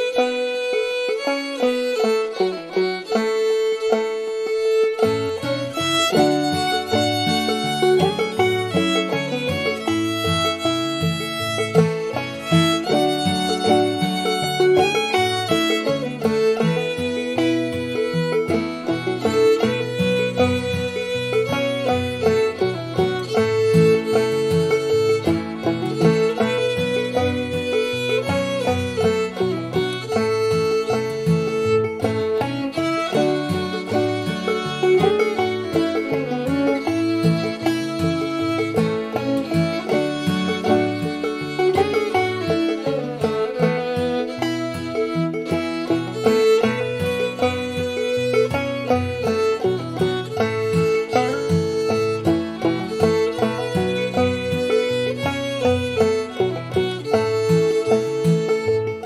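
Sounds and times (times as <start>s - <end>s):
bowed fiddle melody: 0.0s - 59.0s
picked banjo: 0.0s - 59.0s
strummed acoustic guitar: 0.0s - 59.0s.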